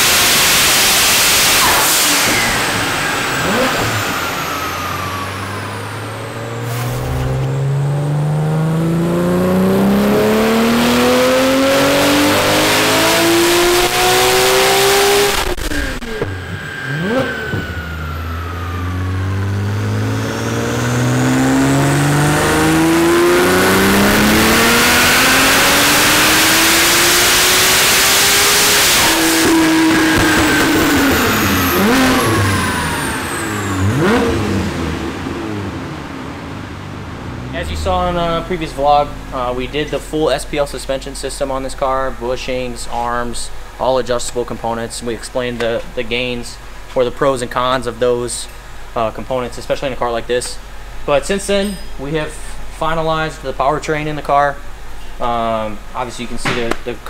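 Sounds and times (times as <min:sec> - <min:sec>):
car engine revving on dyno: 0:00.0 - 0:42.2
engine throttle blips: 0:00.4 - 0:55.0.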